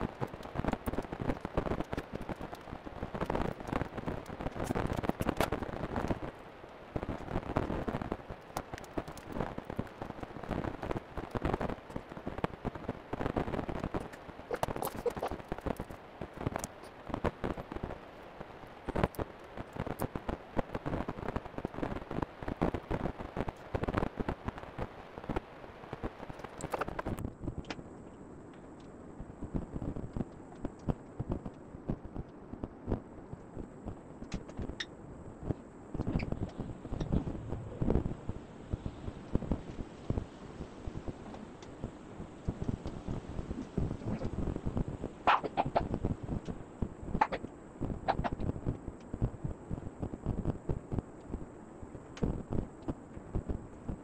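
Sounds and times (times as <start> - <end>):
rustling and crackling handling: 0.0 - 18.0.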